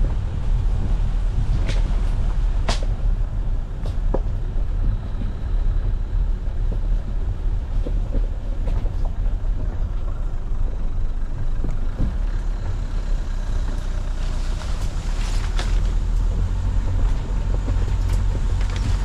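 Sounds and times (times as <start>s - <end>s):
car engine and tyres rumbling: 0.0s - 19.0s.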